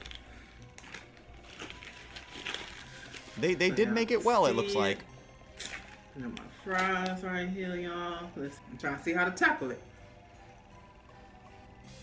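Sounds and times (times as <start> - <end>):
paper wrapper crinkling: 0.0 - 6.5
faint background music: 0.0 - 12.0.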